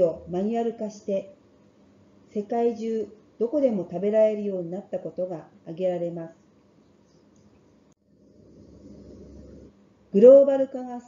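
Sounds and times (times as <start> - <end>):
faint low rumbling: 8.2 - 9.7.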